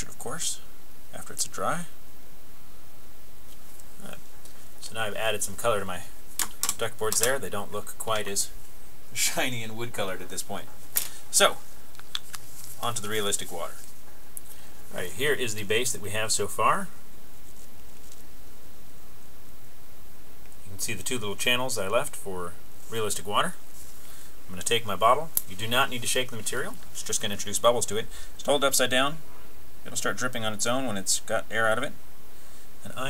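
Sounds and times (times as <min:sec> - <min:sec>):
man speaking: 0:00.0 - 0:02.0, 0:04.0 - 0:04.2, 0:04.8 - 0:08.6, 0:09.2 - 0:10.7, 0:11.3 - 0:11.6, 0:12.8 - 0:13.8, 0:14.9 - 0:17.0, 0:20.6 - 0:23.6, 0:24.5 - 0:29.2
steady background hiss: 0:00.0 - 0:33.0.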